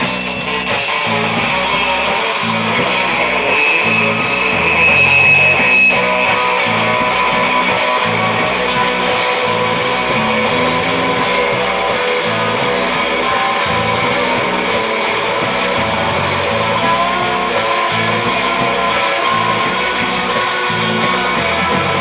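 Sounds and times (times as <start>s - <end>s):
cymbal strokes: 0.0s - 8.6s
electric guitar: 0.0s - 22.0s
live rock band playing: 0.0s - 22.0s.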